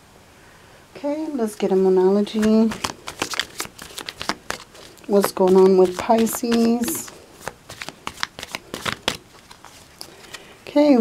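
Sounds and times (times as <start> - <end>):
cards being shuffled: 2.2 - 10.5.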